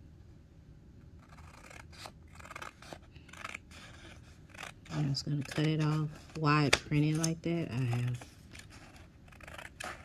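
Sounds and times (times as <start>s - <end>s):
scissors snipping paper: 1.2s - 10.0s.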